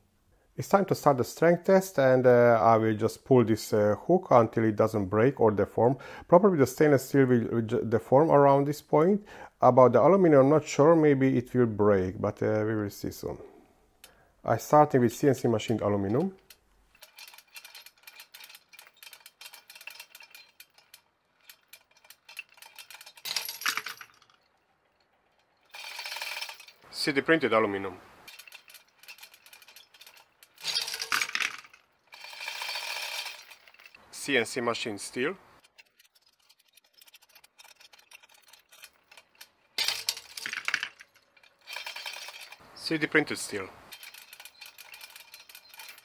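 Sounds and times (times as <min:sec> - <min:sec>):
chain and shackles creaking: 0:15.2 - 0:35.0, 0:35.6 - 0:46.0.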